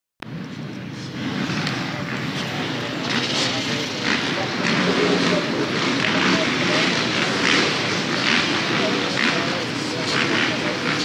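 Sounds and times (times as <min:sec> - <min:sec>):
motorcycle engines at high revs: 0:00.3 - 0:11.0
spectators talking: 0:00.3 - 0:11.0.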